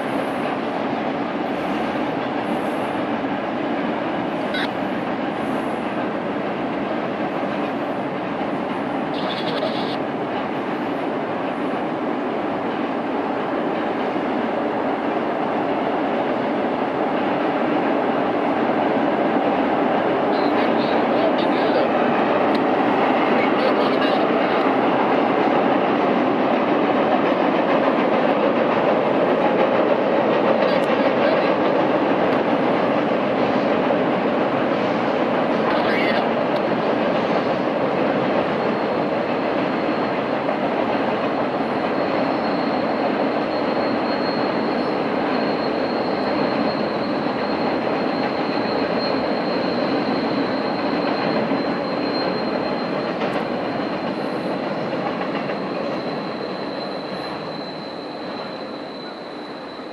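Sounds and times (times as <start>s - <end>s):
freight cars rumbling over bridge: 0.0s - 59.9s
high wheel squeal: 4.3s - 5.7s, 9.1s - 10.0s, 34.5s - 59.9s.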